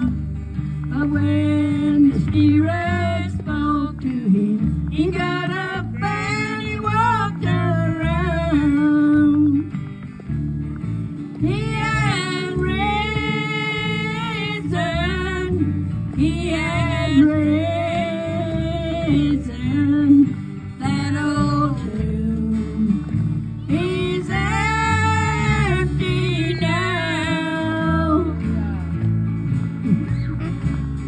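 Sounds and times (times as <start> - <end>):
acoustic guitar: 0.0 - 31.0
women singing: 0.9 - 9.7, 11.4 - 28.4.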